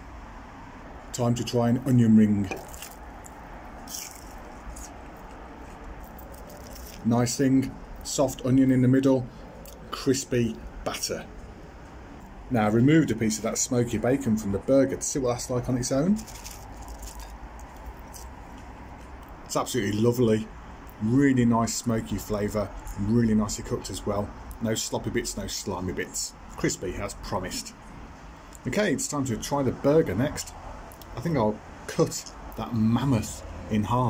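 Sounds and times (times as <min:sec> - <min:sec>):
low background hum: 0:00.0 - 0:34.0
chewing crispy bacon: 0:01.9 - 0:07.1, 0:16.2 - 0:19.5
person crunching onion ring: 0:02.6 - 0:07.1, 0:16.2 - 0:19.4.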